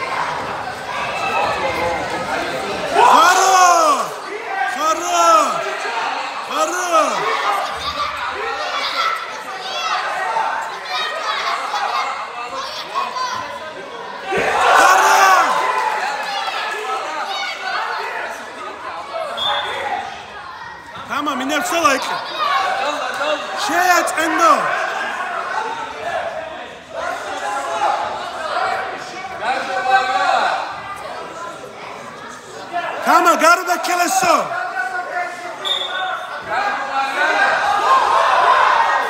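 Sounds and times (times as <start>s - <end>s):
people calling out and talking: 0.0s - 39.0s
people shouting: 2.9s - 9.2s, 14.2s - 16.0s.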